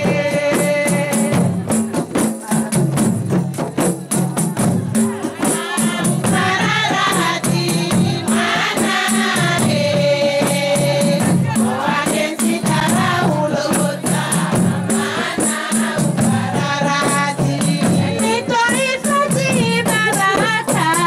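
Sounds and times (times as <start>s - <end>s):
women singing together: 0.0s - 3.0s, 4.1s - 21.0s
jingling frame drums: 0.0s - 21.0s.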